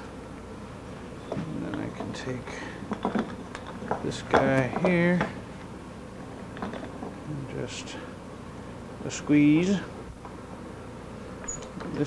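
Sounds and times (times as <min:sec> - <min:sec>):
low shop room noise: 0:00.0 - 0:12.0.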